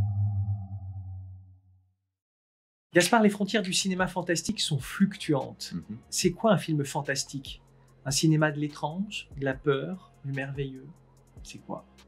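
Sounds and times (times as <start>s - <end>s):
low electronic drone: 0.0s - 1.6s.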